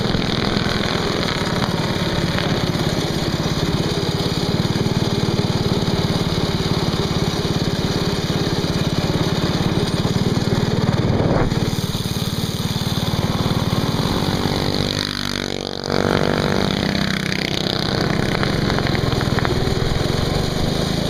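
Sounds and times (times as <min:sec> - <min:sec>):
go-kart engine running: 0:00.0 - 0:21.0.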